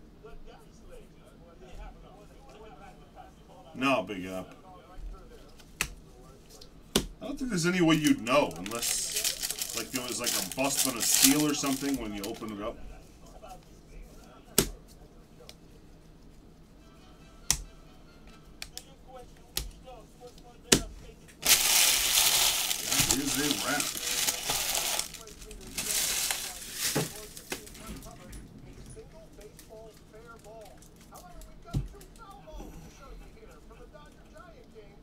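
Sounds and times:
foil wrappers crinkling: 7.9 - 12.6, 21.4 - 28.3, 29.2 - 32.3.

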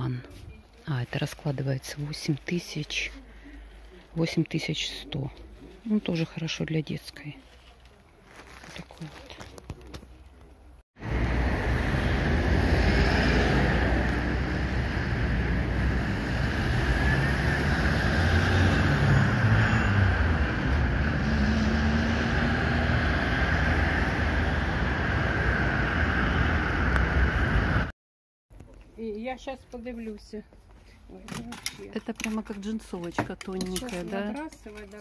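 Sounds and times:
cars passing: 11.0 - 27.9.

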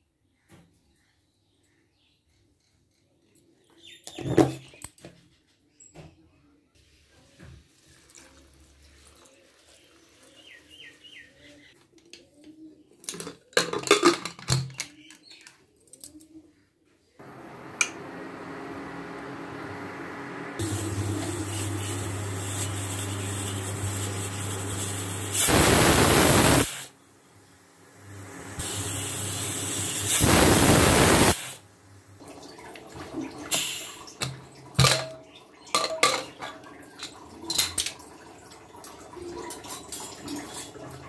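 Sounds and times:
pressure cooker steam hissing: 17.2 - 27.0, 28.0 - 31.7, 33.5 - 34.0
induction cooktop hum: 17.2 - 41.0.

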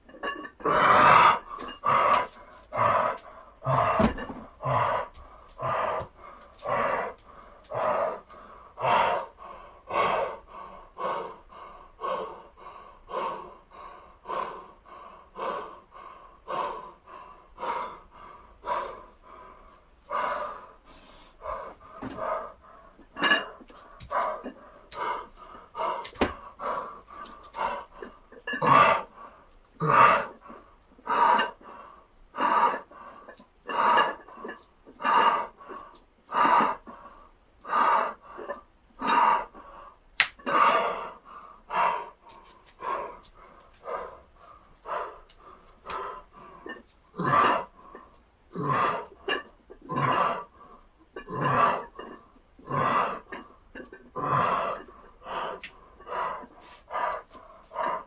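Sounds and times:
man panting hard: 0.7 - 49.2, 52.7 - 58.0.

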